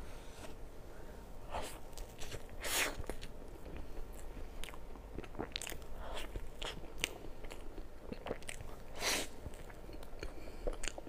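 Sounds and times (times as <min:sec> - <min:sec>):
person chewing cake: 0:01.5 - 0:11.0.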